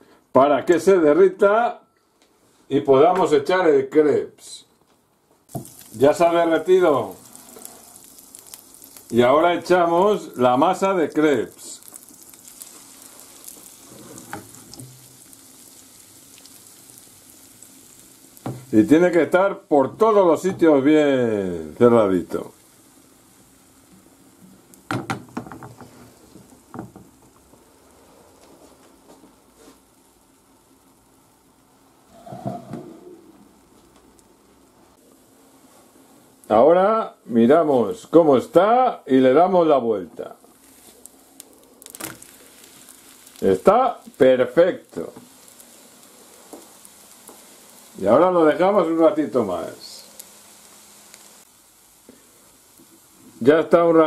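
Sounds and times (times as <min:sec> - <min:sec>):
batter sizzling in frying pan: 0:05.5 - 0:54.0.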